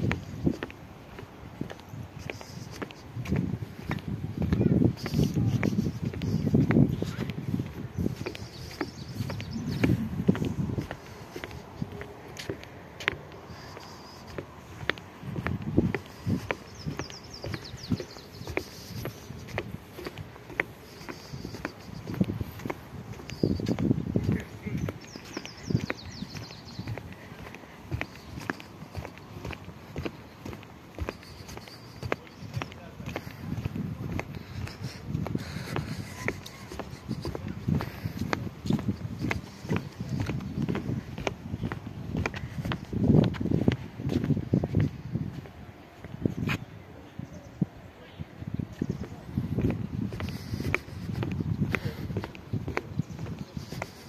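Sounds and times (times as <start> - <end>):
footsteps on a hard path: 0.0 - 46.7, 48.6 - 54.0.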